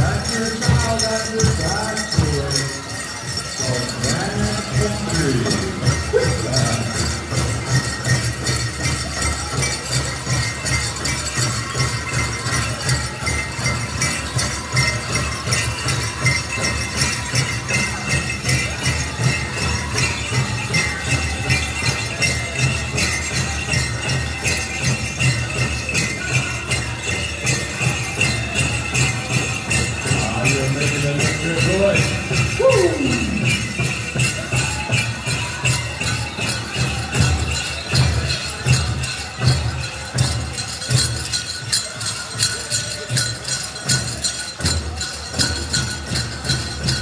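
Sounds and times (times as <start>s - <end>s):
bells jingling: 0.0s - 47.0s
high-pitched singing: 32.6s - 33.8s.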